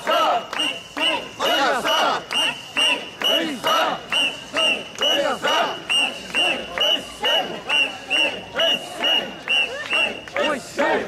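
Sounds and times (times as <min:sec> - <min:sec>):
crowd chanting in unison: 0:00.0 - 0:11.0.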